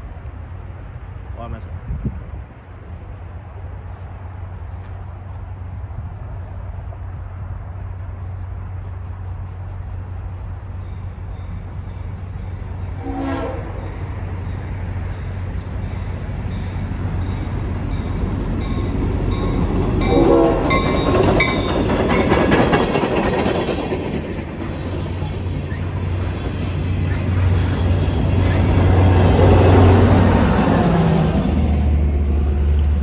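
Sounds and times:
freight train rumble and rail clatter: 0:00.0 - 0:33.0
train horn: 0:12.9 - 0:14.0, 0:20.0 - 0:21.1.

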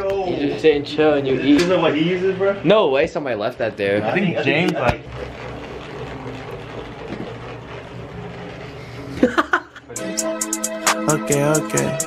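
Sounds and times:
massage gun buzzing: 0:02.7 - 0:11.0.

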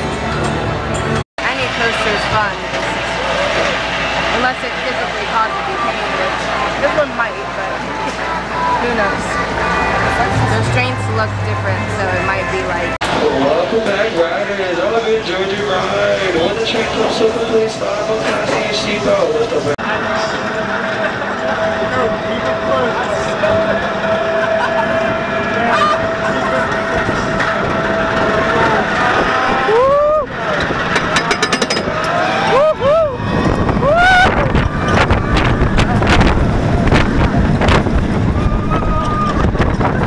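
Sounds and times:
steady hum: 0:00.0 - 0:13.0
roller coaster train rumbling: 0:00.0 - 0:40.0
voices: 0:01.4 - 0:33.2
riders yelling and screaming: 0:07.6 - 0:10.5, 0:22.9 - 0:40.0
rushing wind: 0:23.6 - 0:40.0.

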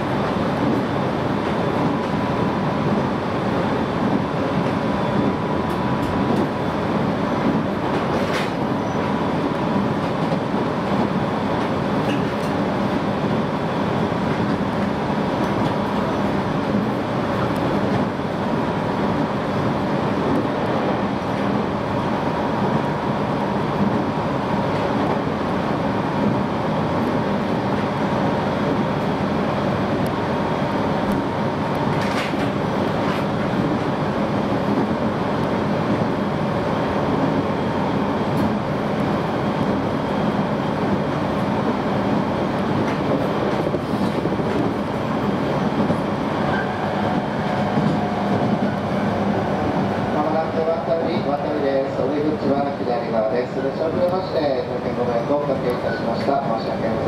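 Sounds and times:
train wheels rumbling on track: 0:00.0 - 0:57.0.

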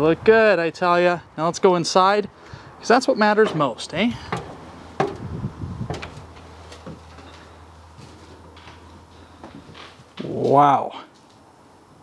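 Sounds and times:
footsteps on trailer steps: 0:03.2 - 0:10.6.

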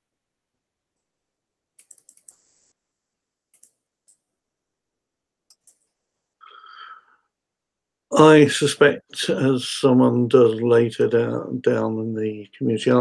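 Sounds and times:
computer mouse clicks: 0:01.8 - 0:02.6, 0:03.5 - 0:04.3, 0:05.5 - 0:05.9.

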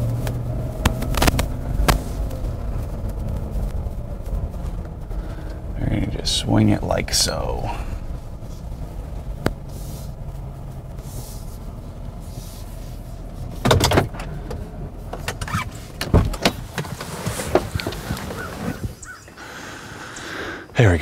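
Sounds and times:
trailer clunks and rattles: 0:00.0 - 0:19.3
car engine running slowly: 0:00.0 - 0:21.0.

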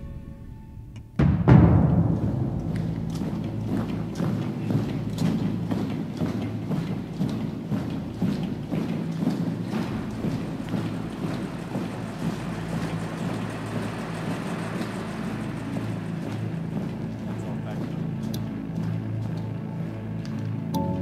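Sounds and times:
steady low rumbling: 0:00.0 - 0:21.0.

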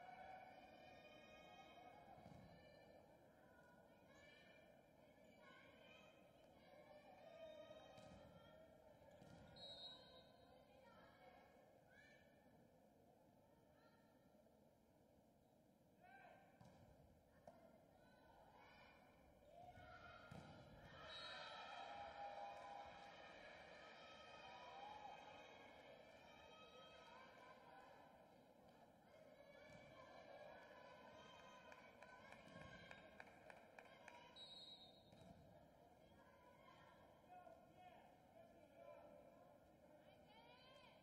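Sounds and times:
crowd cheering and shouting: 0:21.0 - 0:26.8.

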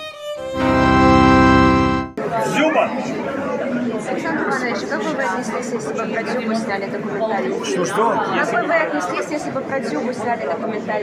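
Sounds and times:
indistinct chatter in echoing hall: 0:01.8 - 0:11.0.

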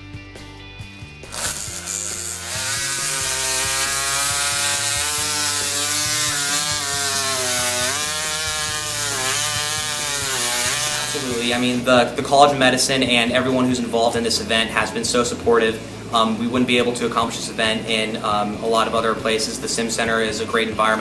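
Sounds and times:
surgical drill motor running: 0:01.3 - 0:11.7.

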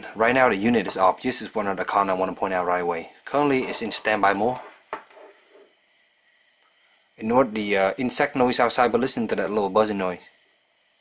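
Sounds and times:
faint electronic buzzing: 0:00.0 - 0:11.0
insects outside: 0:00.0 - 0:11.0.

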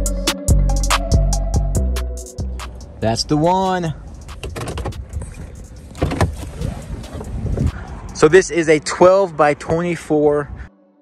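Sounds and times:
car door latch clicks and knocks: 0:04.2 - 0:06.5.

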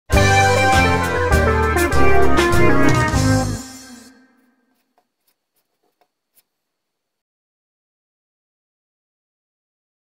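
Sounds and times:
music: 0:00.1 - 0:04.4.

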